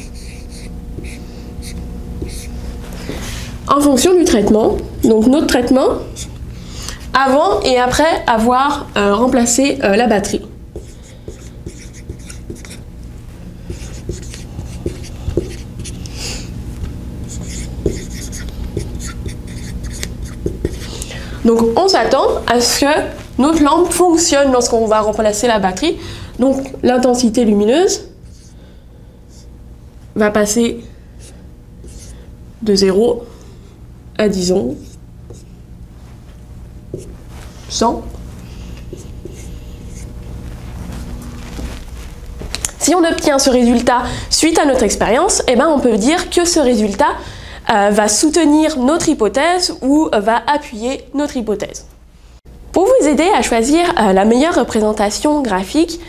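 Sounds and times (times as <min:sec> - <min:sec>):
marker writing on whiteboard: 0:00.0 - 0:02.5, 0:10.7 - 0:12.8, 0:13.7 - 0:16.0, 0:17.3 - 0:20.9, 0:31.2 - 0:32.1, 0:34.8 - 0:35.5, 0:36.9 - 0:37.2, 0:38.9 - 0:40.1
low room hum: 0:00.0 - 0:56.0
marker tip tapping: 0:17.5 - 0:20.8.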